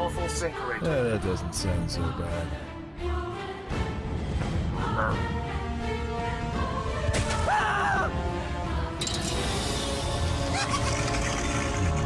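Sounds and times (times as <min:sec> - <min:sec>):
dramatic orchestral score: 0:00.0 - 0:12.0.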